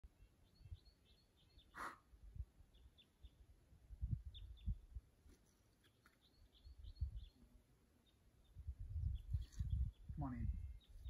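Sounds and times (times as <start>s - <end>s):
small bird chirping: 0.1s - 2.0s, 2.7s - 3.4s, 4.1s - 11.0s.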